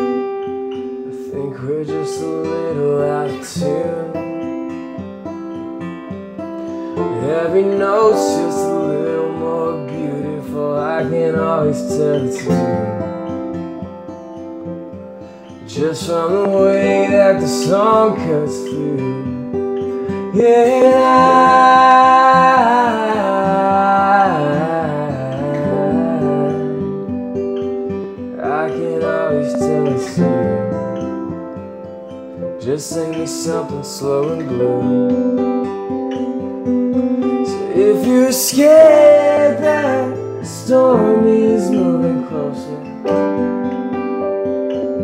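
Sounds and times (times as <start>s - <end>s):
acoustic guitar: 0.0s - 45.0s
piano: 0.0s - 45.0s
wordless vocal slides: 19.9s - 26.8s, 28.4s - 31.2s.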